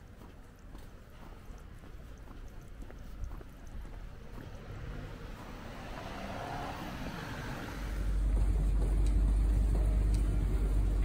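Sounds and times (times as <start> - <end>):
car passing: 4.0 - 11.0.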